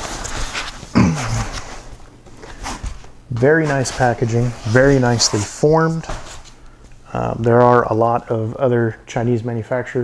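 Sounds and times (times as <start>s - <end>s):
foam rustling against cardboard: 0.0s - 6.6s.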